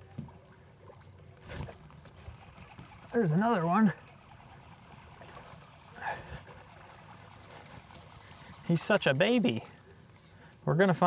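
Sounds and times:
background noise on water: 0.0s - 11.0s.

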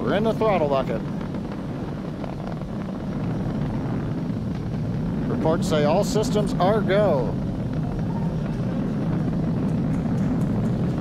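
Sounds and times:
rocket engines rumbling: 0.0s - 11.0s.

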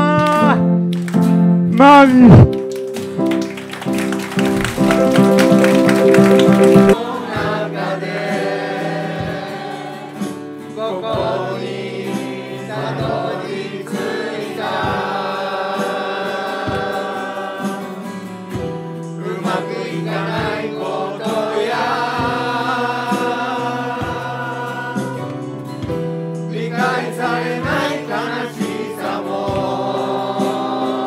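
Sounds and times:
acoustic guitar strummed chords: 2.5s - 31.0s
group of people singing: 5.8s - 31.0s.

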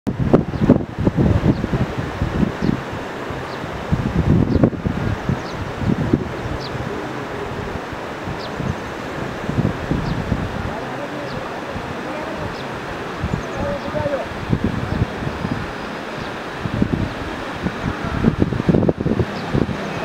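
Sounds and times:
wind buffeting microphone: 0.1s - 20.0s.

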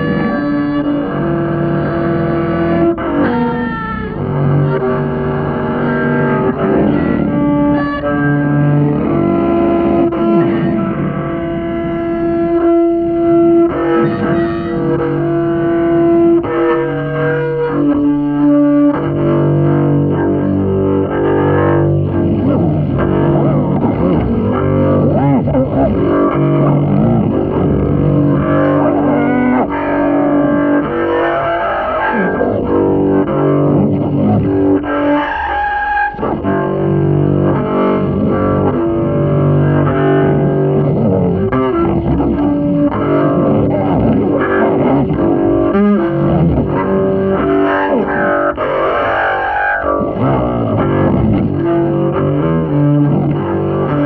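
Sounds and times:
double bass held sliding notes: 0.0s - 35.2s, 36.2s - 54.0s.

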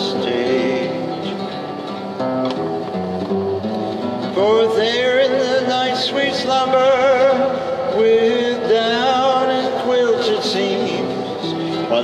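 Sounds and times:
person singing: 0.0s - 1.6s, 4.3s - 12.0s
classical guitar plucked notes: 0.0s - 12.0s.

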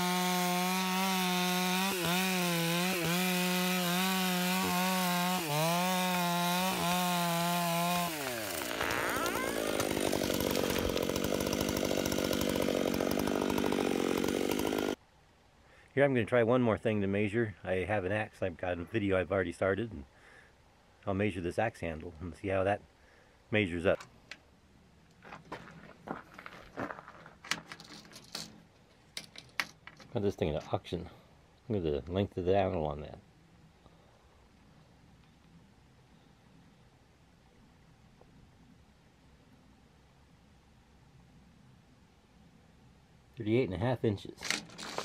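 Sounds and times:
chainsaw cutting wood: 0.0s - 15.0s, 44.4s - 45.0s
branches crashing: 5.5s - 15.0s
tree cracking and splintering: 5.5s - 15.0s.

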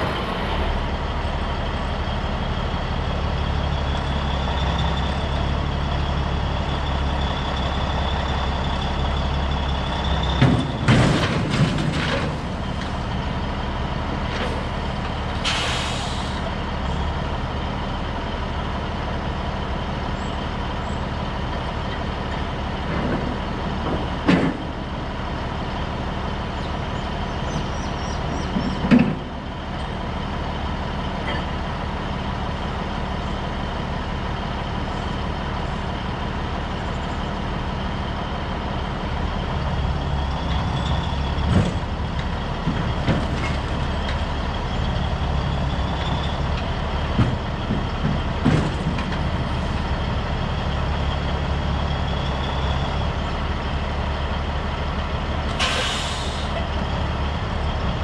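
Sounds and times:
diesel truck engine running: 0.0s - 58.0s.

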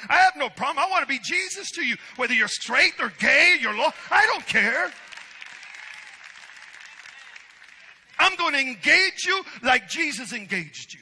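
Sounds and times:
congregation applauding: 4.2s - 8.7s.

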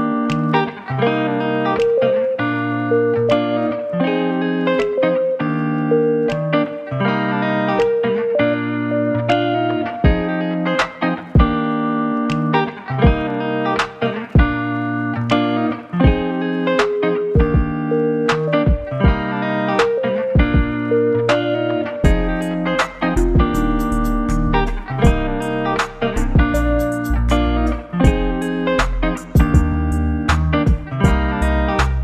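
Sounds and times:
instrumental background music: 0.0s - 32.0s.

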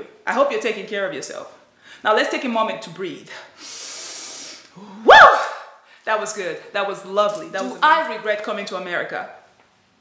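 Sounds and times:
woman breathing in: 3.6s - 5.0s
woman shouting woo: 5.0s - 5.7s.

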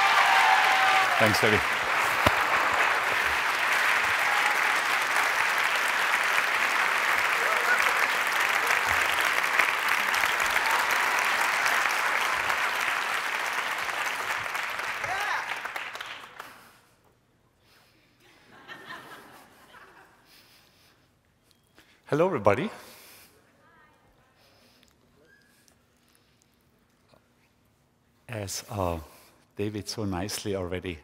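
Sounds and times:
large audience applauding: 0.0s - 16.7s.

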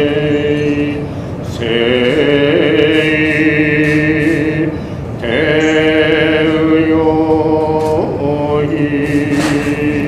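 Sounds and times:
solo voice chanting: 0.0s - 10.0s.

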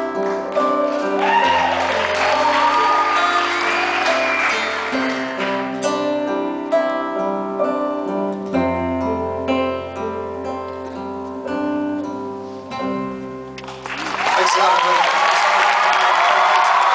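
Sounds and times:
acoustic guitar chords: 0.0s - 14.0s.

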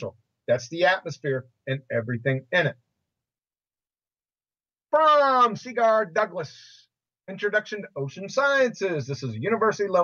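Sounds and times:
man speaking: 0.0s - 2.9s, 4.9s - 10.0s.

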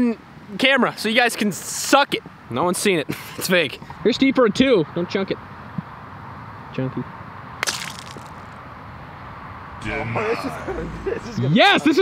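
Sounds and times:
golf club striking ball: 7.6s - 8.5s.

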